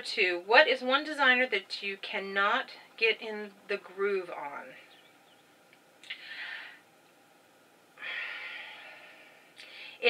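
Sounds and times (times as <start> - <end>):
woman breathing through nose: 6.1 - 6.8, 8.0 - 10.0.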